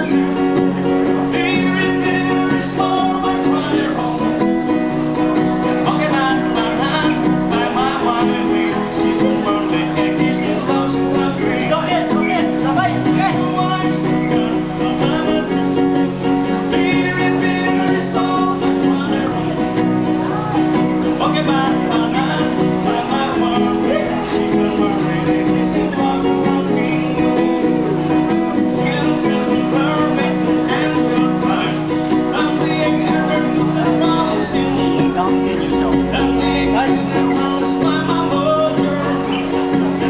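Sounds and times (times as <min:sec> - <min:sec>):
acoustic guitar strumming: 0:00.0 - 0:40.0
man singing: 0:00.0 - 0:40.0.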